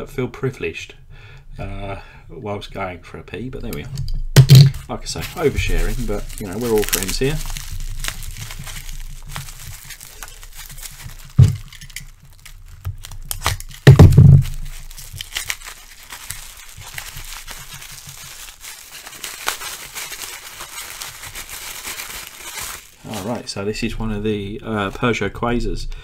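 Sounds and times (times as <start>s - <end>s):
dull thumps: 4.3s - 15.4s
bubble wrap crinkling: 4.4s - 23.5s.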